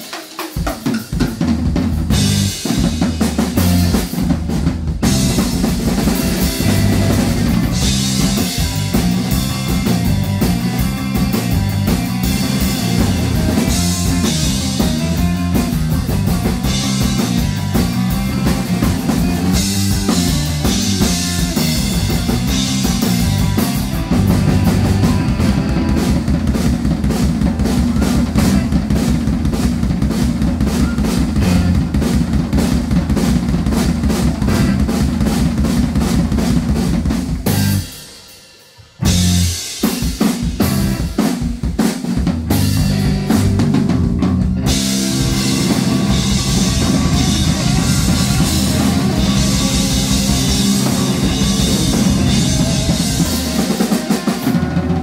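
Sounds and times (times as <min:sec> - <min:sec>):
drum solo: 0:00.0 - 0:55.0.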